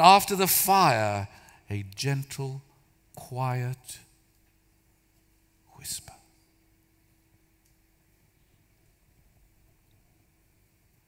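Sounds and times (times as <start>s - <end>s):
faint steady hum: 0.0s - 11.0s
man whispering: 5.6s - 6.4s.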